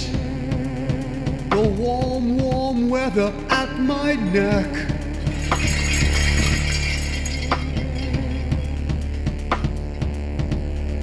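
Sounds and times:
shimmering jingling synth layer: 5.2s - 9.0s.

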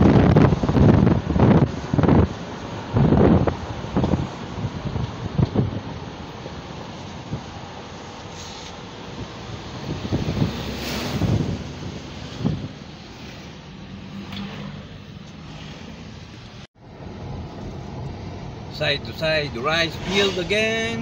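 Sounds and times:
car engine hum: 0.0s - 21.0s
road and wind noise: 0.0s - 21.0s.

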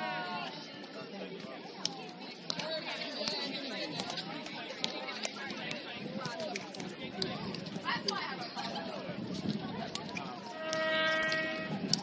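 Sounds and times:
chatter of voices: 0.0s - 12.0s
high-pitched call: 10.5s - 11.8s.

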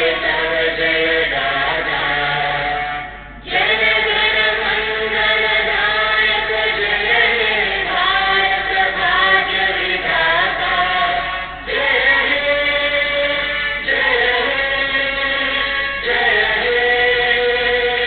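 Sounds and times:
girls singing together: 0.0s - 2.8s, 3.4s - 18.0s.

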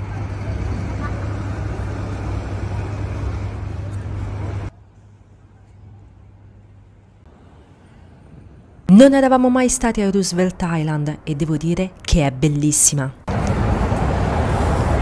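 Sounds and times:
low traffic drone: 0.0s - 15.0s.

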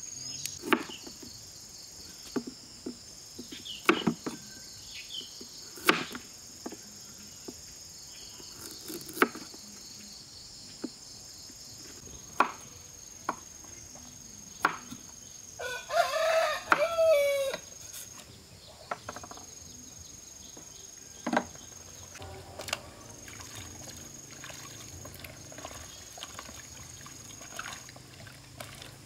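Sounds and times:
high insect drone: 0.0s - 29.0s
rooster crowing: 15.6s - 17.6s.

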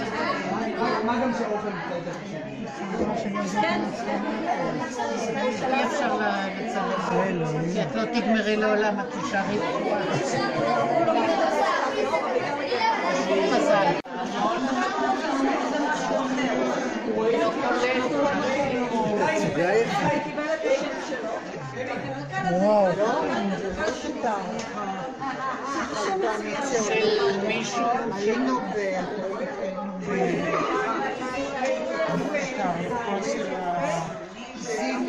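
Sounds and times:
overlapping chatter with echo: 0.0s - 35.0s.

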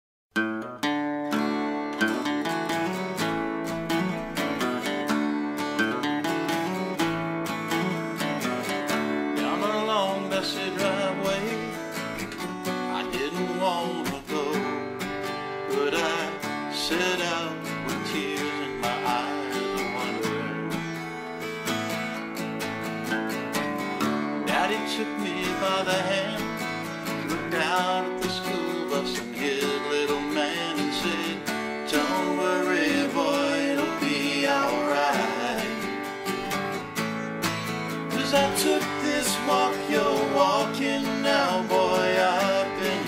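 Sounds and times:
acoustic guitars playing: 0.3s - 43.0s.

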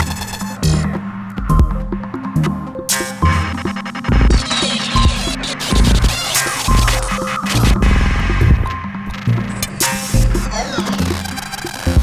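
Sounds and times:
deep bass pulses: 0.0s - 4.4s, 5.0s - 10.6s
glitchy clicks: 4.0s - 12.0s.

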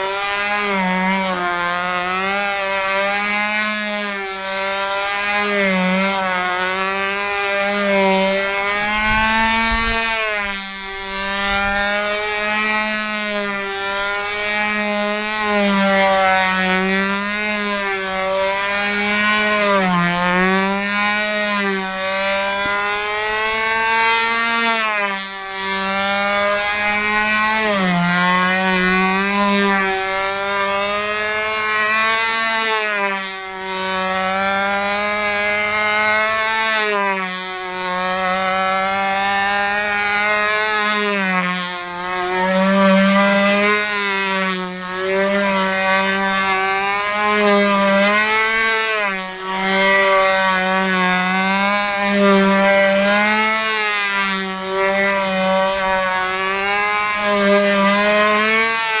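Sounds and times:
model airplane engine at full throttle: 0.0s - 59.0s.

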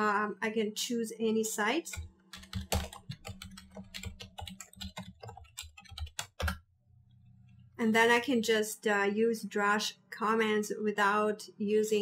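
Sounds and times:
computer keyboard typing: 1.9s - 6.6s.

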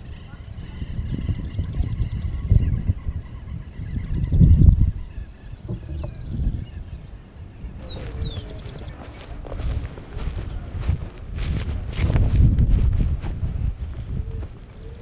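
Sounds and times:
small birds singing: 0.0s - 12.6s, 13.6s - 15.0s
wind buffeting microphone: 0.0s - 15.0s.

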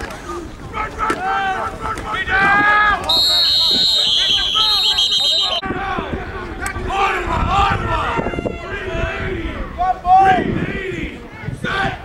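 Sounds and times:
loud drawn-out yell: 0.3s - 12.0s.

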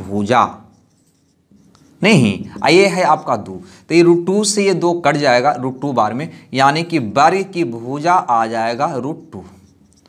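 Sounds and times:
marker writing on whiteboard: 0.0s - 6.2s, 8.8s - 10.0s
man speaking: 2.0s - 9.7s.

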